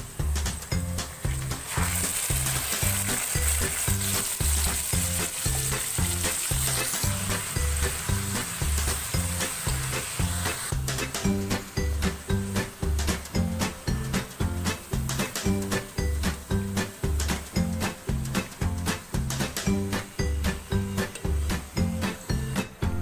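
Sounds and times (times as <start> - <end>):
chicken sizzling in a pan: 0.0 - 22.8
background music with steady beat: 0.0 - 23.0.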